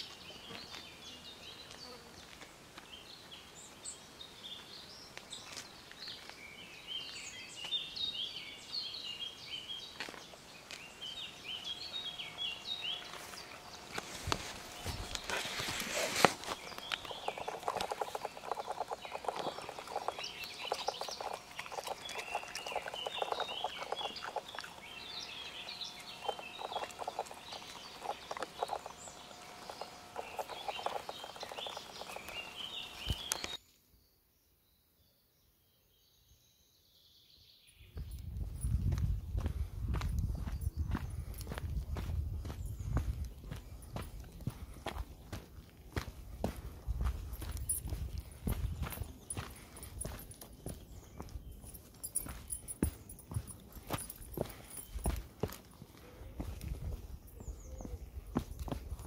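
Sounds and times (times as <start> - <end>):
small birds chirping: 0.0 - 59.0
loud brush of noise: 13.2 - 16.6.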